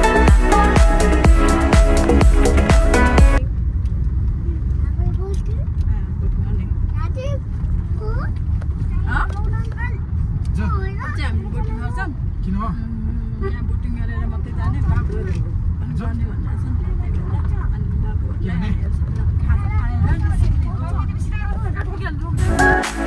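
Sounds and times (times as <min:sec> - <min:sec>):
car road and engine rumble: 0:00.0 - 0:23.0
people talking: 0:12.7 - 0:22.4.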